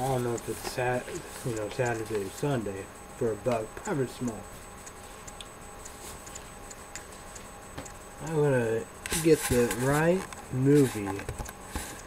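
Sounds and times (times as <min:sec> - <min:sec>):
faint light ticks: 0:00.0 - 0:02.3, 0:03.5 - 0:08.0.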